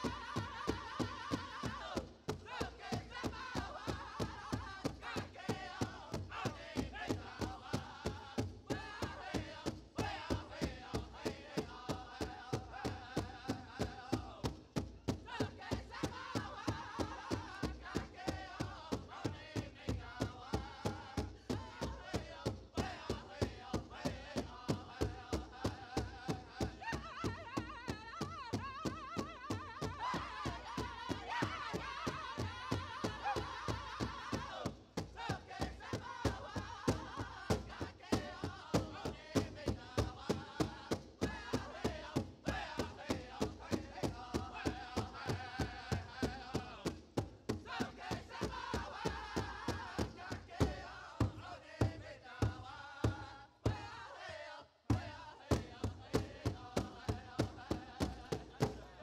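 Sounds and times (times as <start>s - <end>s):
big drum fast steady beat: 0.0s - 54.2s, 54.9s - 59.0s
group singing: 0.0s - 59.0s.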